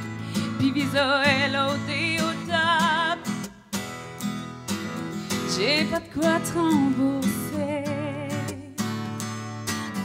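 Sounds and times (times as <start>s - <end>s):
acoustic guitar strumming: 0.0s - 10.0s
woman singing with vibrato: 0.4s - 3.4s, 5.3s - 8.9s.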